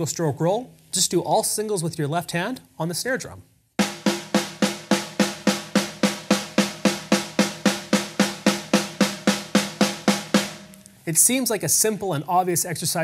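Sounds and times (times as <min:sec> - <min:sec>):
snare drum strokes: 0:03.8 - 0:10.8.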